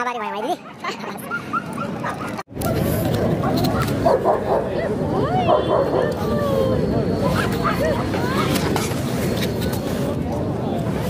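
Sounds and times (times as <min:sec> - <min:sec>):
crowd chatter: 0:00.3 - 0:11.0
dogs barking and whimpering: 0:00.6 - 0:02.5, 0:03.4 - 0:08.4.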